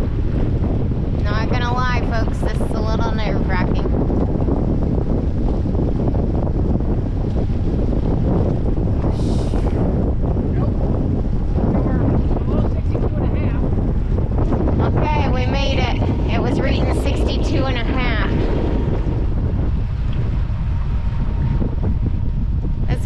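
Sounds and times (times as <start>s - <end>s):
wind buffeting microphone: 0.0s - 23.0s
indistinct voices: 1.2s - 3.9s, 14.7s - 19.0s.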